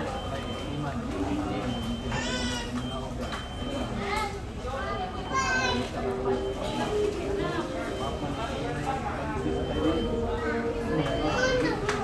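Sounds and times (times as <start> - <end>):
restaurant murmur: 0.0 - 12.0.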